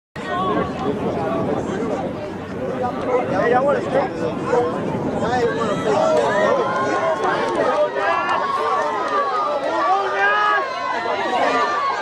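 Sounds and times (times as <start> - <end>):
spectators shouting: 4.4 - 12.0.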